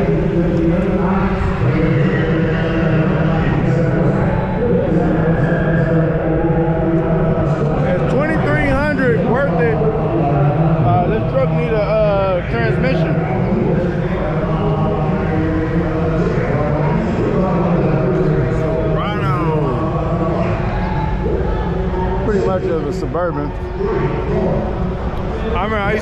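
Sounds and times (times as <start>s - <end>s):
man talking: 0.0s - 20.7s, 22.2s - 24.7s, 25.3s - 26.0s.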